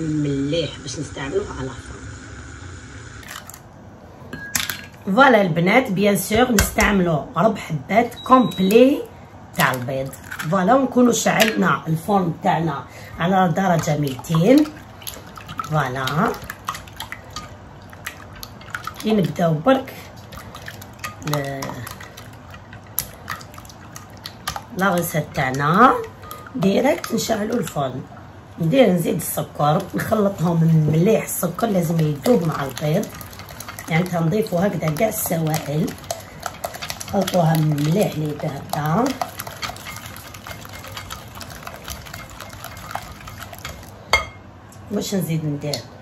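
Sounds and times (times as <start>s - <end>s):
liquid sloshing: 3.2s - 3.9s, 9.5s - 12.4s, 13.0s - 44.3s
whisk beating eggs in glass bowl: 13.3s - 28.0s, 28.8s - 44.0s.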